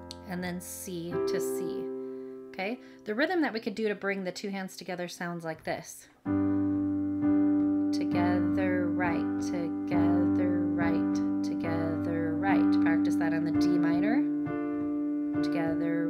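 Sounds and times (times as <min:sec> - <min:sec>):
person's voice: 0:00.0 - 0:01.9, 0:02.6 - 0:06.2, 0:08.0 - 0:14.3, 0:15.4 - 0:16.0
keyboard piano chords: 0:00.0 - 0:03.6, 0:06.2 - 0:16.0.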